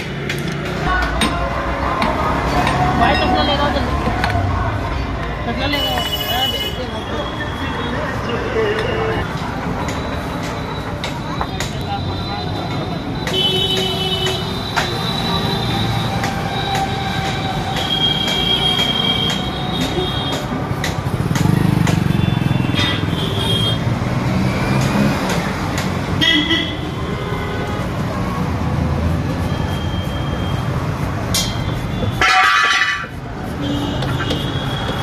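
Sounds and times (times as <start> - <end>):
traffic rumble: 0.0 - 35.0.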